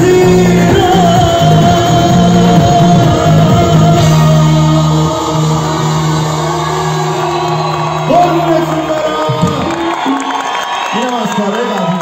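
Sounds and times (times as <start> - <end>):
band holding sustained chord: 1.4 - 9.4.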